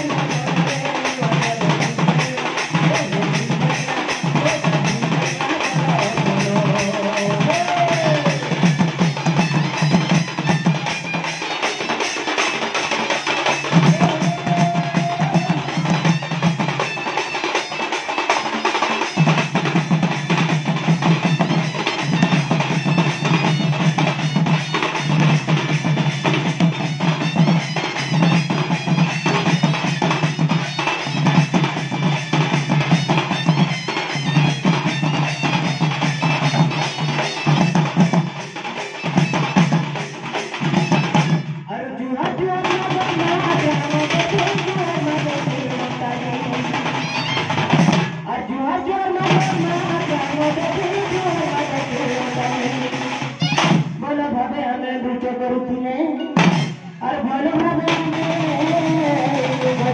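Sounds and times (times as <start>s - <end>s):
barrel drums fast rhythm: 0.0s - 48.4s, 49.1s - 54.2s, 56.4s - 59.9s.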